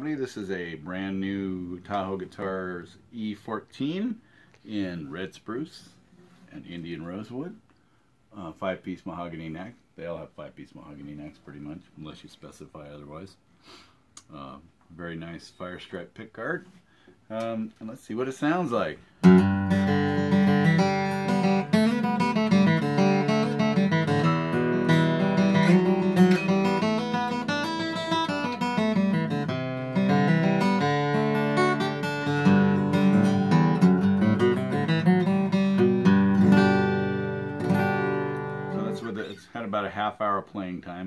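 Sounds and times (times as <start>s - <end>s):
acoustic guitar strummed and picked: 19.0s - 40.1s.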